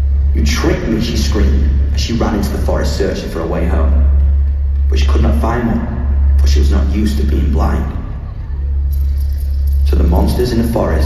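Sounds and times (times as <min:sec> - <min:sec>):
deep bass rumble: 0:00.0 - 0:11.0.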